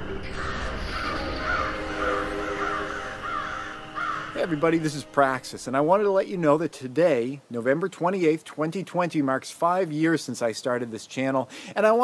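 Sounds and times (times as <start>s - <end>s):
low drone of held tones: 0.0s - 5.8s
crows cawing: 0.3s - 5.5s.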